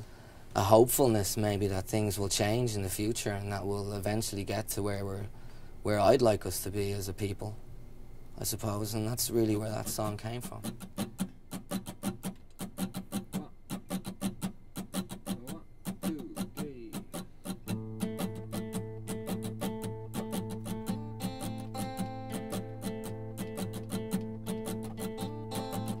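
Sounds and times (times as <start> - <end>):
acoustic guitar picking: 8.5 - 26.0.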